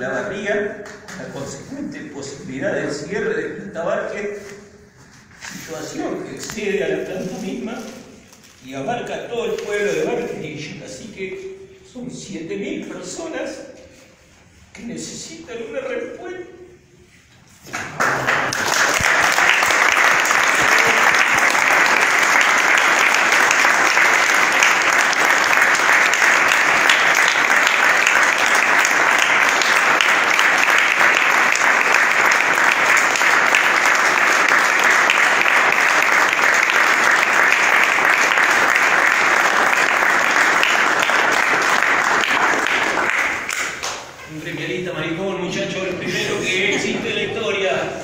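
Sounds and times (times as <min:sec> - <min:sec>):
people clapping: 0:00.8 - 0:01.4, 0:17.6 - 0:44.2.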